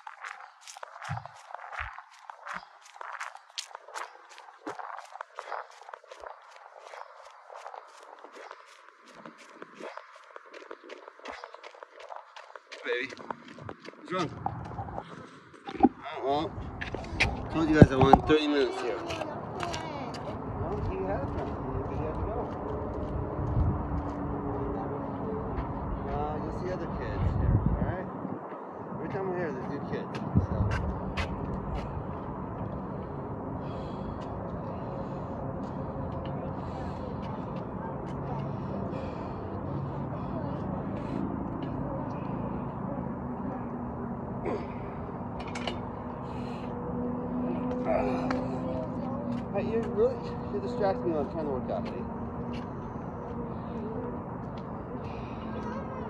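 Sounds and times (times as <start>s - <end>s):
low rumbles: 0.0s - 18.5s
outdoor background noise: 0.0s - 56.0s
children's voices: 18.7s - 20.3s, 55.1s - 56.0s.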